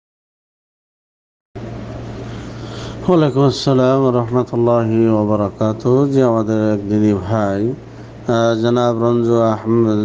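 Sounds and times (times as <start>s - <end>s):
steady hiss with electrical hum: 1.6s - 10.0s.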